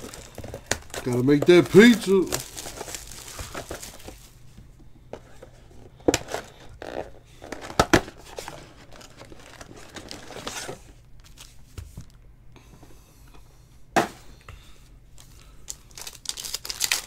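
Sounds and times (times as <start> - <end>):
plastic wrapping crinkling: 0.0 - 4.4, 8.2 - 12.2, 15.2 - 17.0.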